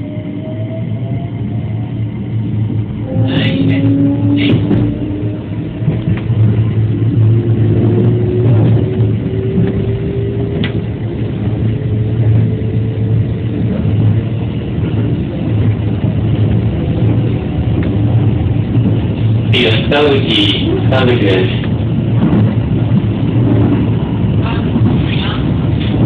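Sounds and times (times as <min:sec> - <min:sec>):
train running rumble: 0:00.0 - 0:26.0.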